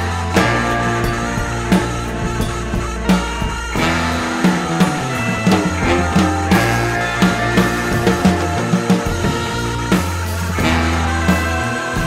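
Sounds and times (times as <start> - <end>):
drum hits: 0.0 - 12.0
electric guitar: 0.0 - 12.0
sustained low bass notes: 0.0 - 12.0.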